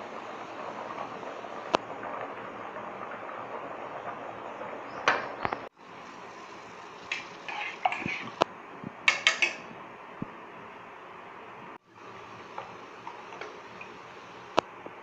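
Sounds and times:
steady background hiss: 0.0s - 15.0s
metal spoon scraping a pot: 7.1s - 8.4s, 9.1s - 9.7s.

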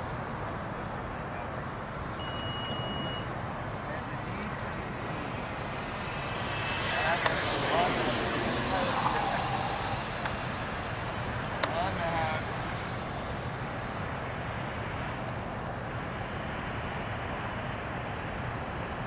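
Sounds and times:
model jet ducted fans whining: 0.0s - 19.0s.

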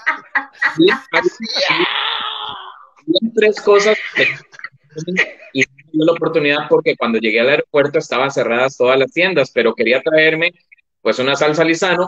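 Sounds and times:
breathy drawn-out vocal cry: 0.6s - 3.0s.

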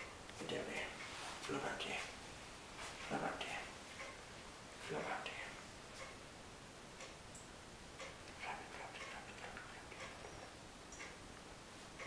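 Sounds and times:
clock ticking: 3.0s - 4.3s, 4.9s - 6.3s, 7.0s - 7.2s, 7.9s - 12.0s.

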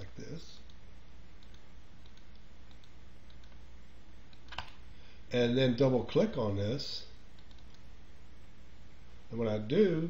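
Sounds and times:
low steady hum: 0.0s - 10.0s
computer mouse clicks: 0.5s - 0.8s, 1.4s - 3.6s, 4.3s - 4.8s, 7.3s - 7.9s.

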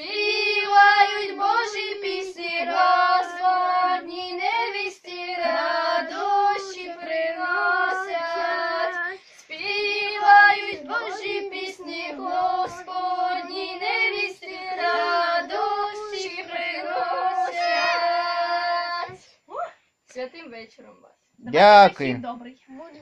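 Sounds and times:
children singing unaccompanied: 0.0s - 19.2s.

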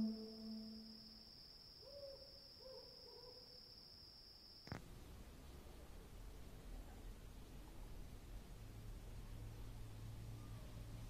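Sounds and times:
owl hooting: 0.0s - 0.9s, 1.8s - 2.8s
high-pitched insect drone: 0.0s - 1.4s.

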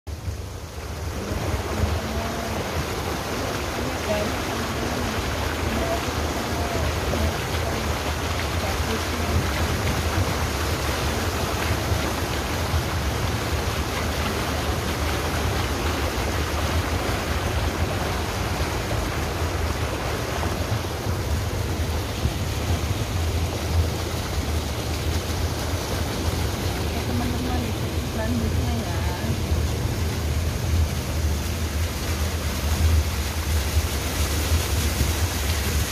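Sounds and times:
car rushing through water: 0.1s - 35.9s
low engine and road rumble: 0.1s - 35.9s.

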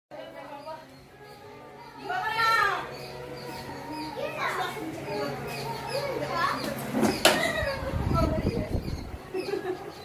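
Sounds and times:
voices chattering and calling: 0.1s - 10.0s.

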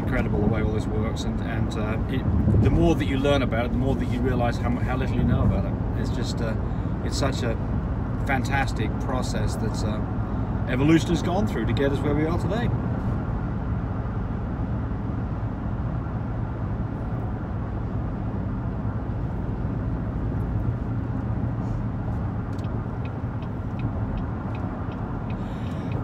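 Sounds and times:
road and engine rumble in car: 0.0s - 26.0s.

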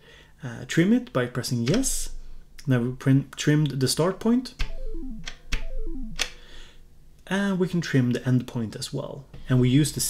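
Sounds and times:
electronic bleeps stepping down: 4.6s - 6.4s.

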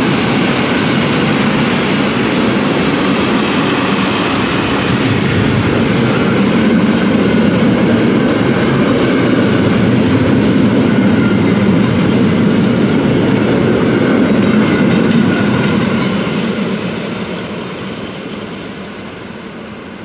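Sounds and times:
train wheels rumbling on rails: 0.0s - 20.0s.

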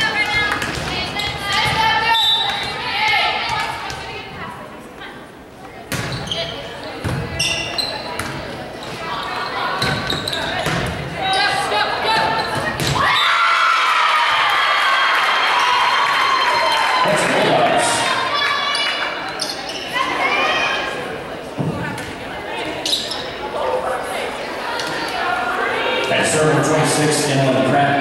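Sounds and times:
crowd cheering: 11.5s - 21.0s.

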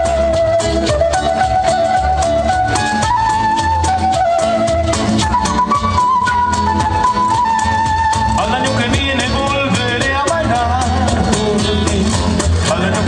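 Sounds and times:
cajon beat: 0.0s - 13.0s
electric bass: 0.0s - 13.0s
strummed acoustic guitars: 0.0s - 13.0s.

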